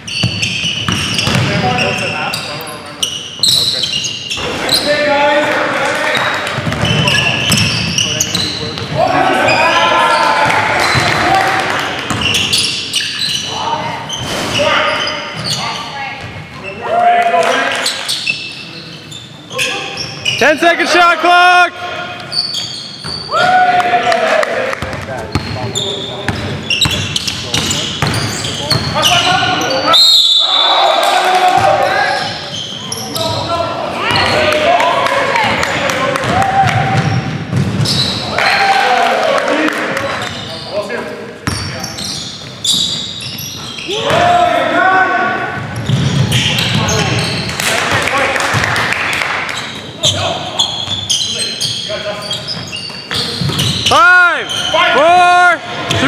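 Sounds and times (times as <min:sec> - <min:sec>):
sneaker squeaks: 0:00.0 - 0:05.1, 0:06.1 - 0:11.2, 0:11.9 - 0:16.9, 0:17.5 - 0:20.6, 0:22.0 - 0:23.5, 0:24.8 - 0:31.0, 0:31.6 - 0:34.6, 0:36.9 - 0:38.4, 0:40.1 - 0:44.4, 0:45.5 - 0:47.7, 0:49.4 - 0:55.0
basketball bouncing on gym floor: 0:00.1 - 0:01.8, 0:06.6 - 0:09.0, 0:35.4 - 0:38.0, 0:52.5 - 0:53.9
players shouting: 0:08.9 - 0:12.4, 0:19.6 - 0:22.2, 0:23.2 - 0:25.0, 0:28.5 - 0:37.2, 0:38.2 - 0:40.3, 0:43.8 - 0:45.7, 0:53.8 - 0:56.0.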